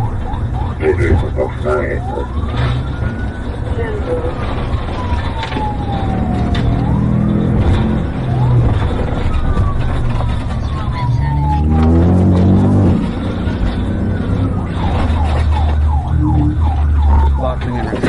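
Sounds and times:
car engine revving: 0.0s - 18.0s
police siren wailing: 0.0s - 18.0s.

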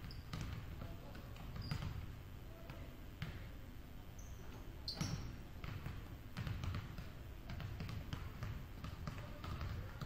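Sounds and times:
basketballs bouncing on wood floor: 0.0s - 3.5s, 4.4s - 10.0s
high squeaks: 4.2s - 5.4s.

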